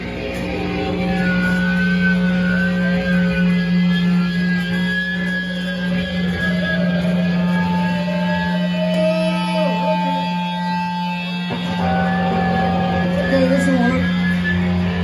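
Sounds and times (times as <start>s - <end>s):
distorted electric guitar drone: 0.0s - 15.0s
high guitar feedback tone: 0.0s - 15.0s.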